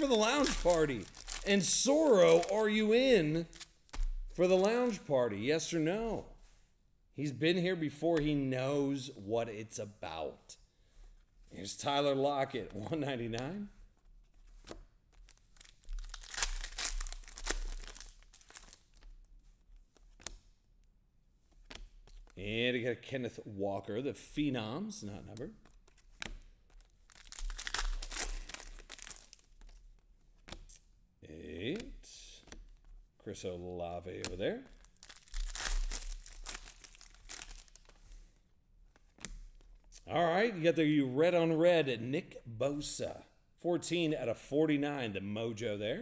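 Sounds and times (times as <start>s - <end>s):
foil wrapper crinkling and tearing: 0.0s - 5.0s, 15.1s - 19.2s, 26.7s - 29.9s, 34.7s - 38.2s
cards rustling and clicking: 0.0s - 5.1s, 12.6s - 20.6s, 21.4s - 22.4s, 25.2s - 30.9s, 31.8s - 33.1s, 34.1s - 40.0s.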